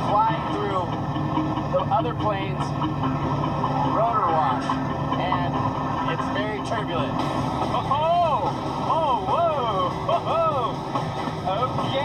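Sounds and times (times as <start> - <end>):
background music smooth tones: 0.0 - 12.0
vehicle road and engine rumble: 0.0 - 12.0.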